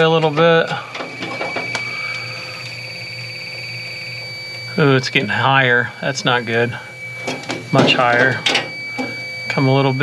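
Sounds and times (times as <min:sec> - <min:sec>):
leak detector pulsing alarm: 0:00.0 - 0:10.0
low hum: 0:00.0 - 0:10.0.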